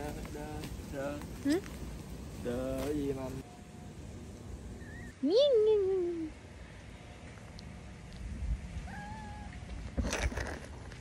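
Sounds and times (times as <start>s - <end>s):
rustling noise: 0.0s - 3.5s, 9.5s - 11.0s.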